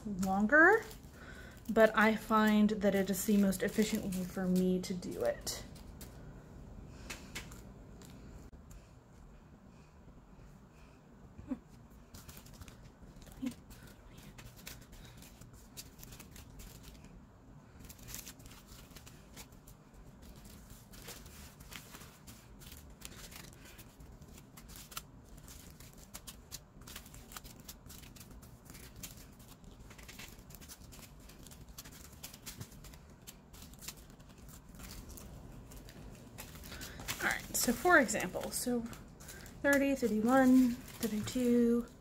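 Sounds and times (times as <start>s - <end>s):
plastic bags crinkling: 0.0s - 6.2s, 12.2s - 17.1s, 17.7s - 42.0s.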